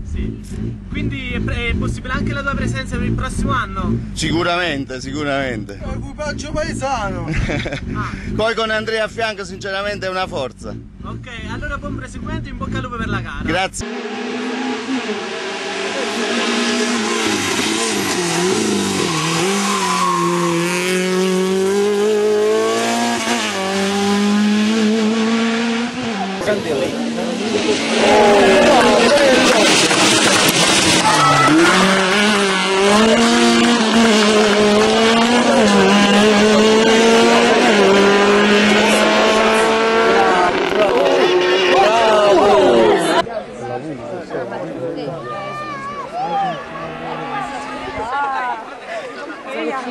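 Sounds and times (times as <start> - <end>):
rally car engine revving: 0.0 - 43.3.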